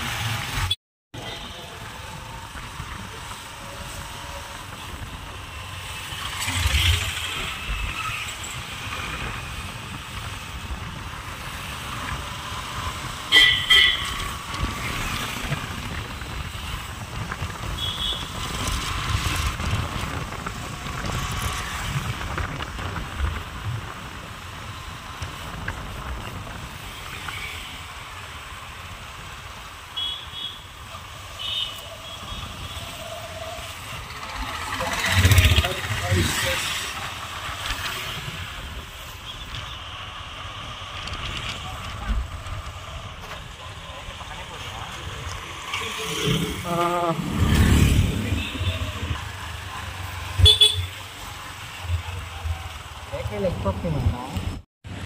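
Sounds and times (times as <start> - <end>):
wind and road noise: 0.0 - 55.0
vehicle passing close: 45.6 - 50.4.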